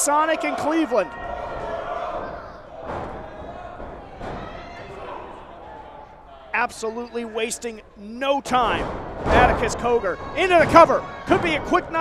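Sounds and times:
audience shouts: 0:00.0 - 0:06.6, 0:09.5 - 0:12.0
crowd noise in a hall: 0:00.0 - 0:12.0.

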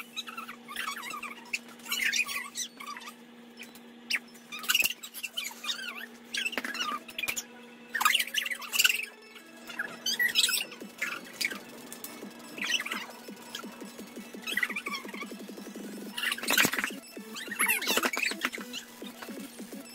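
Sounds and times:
children squealing and laughing: 0:00.0 - 0:03.2, 0:04.1 - 0:07.3, 0:14.4 - 0:15.3
steady low hum: 0:00.0 - 0:19.9.

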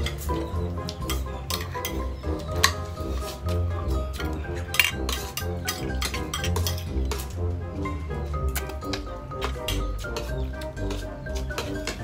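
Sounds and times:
spoons clinking on bowls: 0:00.0 - 0:07.3, 0:08.4 - 0:12.0
music with bass beat: 0:00.0 - 0:12.0.

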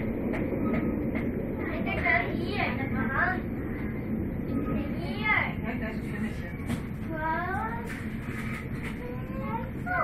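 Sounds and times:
train rumble inside carriage: 0:00.0 - 0:10.0.

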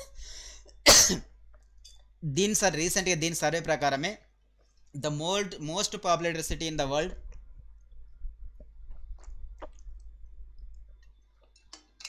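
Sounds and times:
man coughing: 0:00.9 - 0:01.3.

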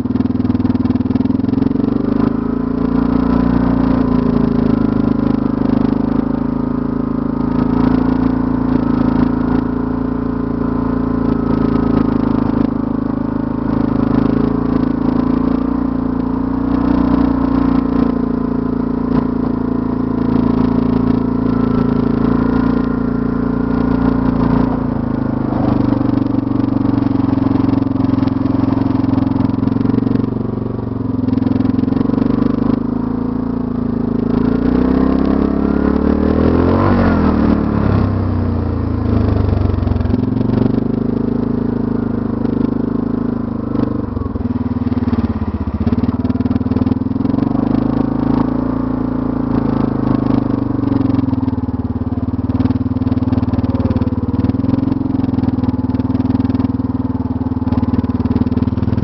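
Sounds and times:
atv engine running: 0:00.0 - 0:59.0.

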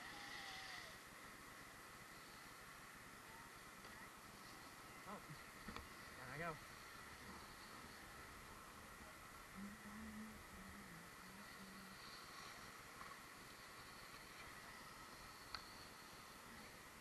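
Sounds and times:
faint low hum: 0:00.0 - 0:17.0
faint steady hiss: 0:00.0 - 0:17.0.

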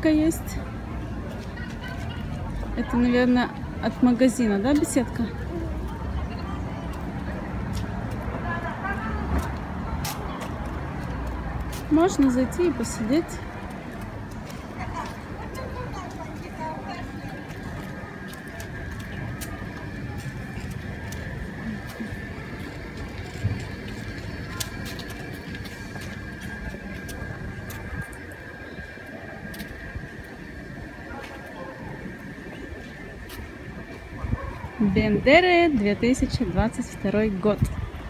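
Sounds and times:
faint voices: 0:00.0 - 0:38.0
low street rumble: 0:00.0 - 0:38.0.

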